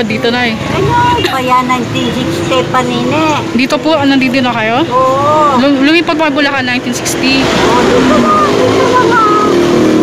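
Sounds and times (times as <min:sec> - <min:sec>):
engine humming: 0:00.0 - 0:10.0
loud traffic noise: 0:00.0 - 0:10.0.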